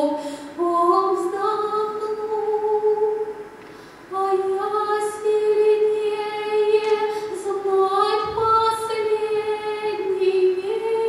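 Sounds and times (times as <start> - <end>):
woman singing unaccompanied: 0.0 - 3.4, 4.1 - 11.0
short breath: 0.2 - 0.6, 3.6 - 4.1.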